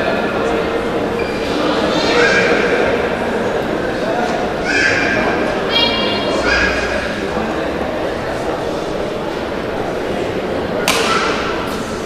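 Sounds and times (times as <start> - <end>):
crowd murmur: 0.0 - 12.0
racket striking shuttlecock: 10.8 - 11.8.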